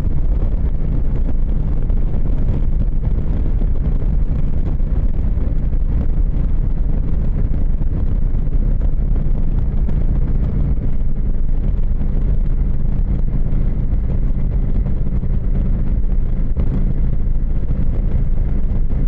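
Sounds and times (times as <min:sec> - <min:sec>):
motorcycle engine cruising: 0:00.0 - 0:19.0
wind noise on microphone: 0:00.0 - 0:19.0.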